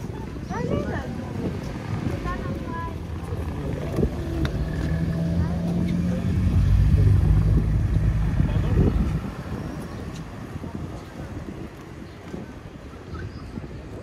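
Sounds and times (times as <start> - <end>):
vehicle engine passing by: 3.1 - 10.3.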